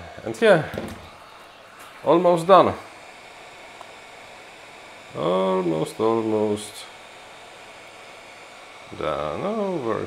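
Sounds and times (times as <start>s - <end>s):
heat gun blowing hot air: 0.0s - 10.0s.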